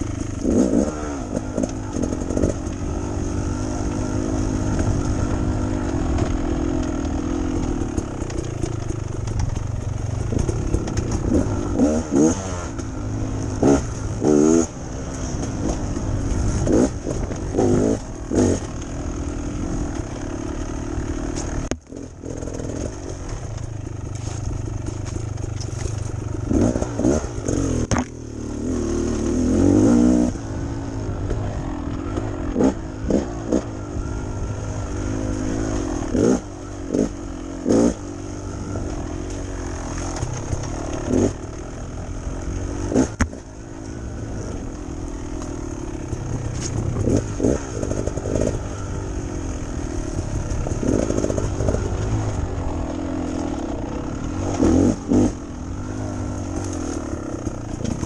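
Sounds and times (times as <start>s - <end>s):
dirt bike engine revving: 0.0s - 58.0s.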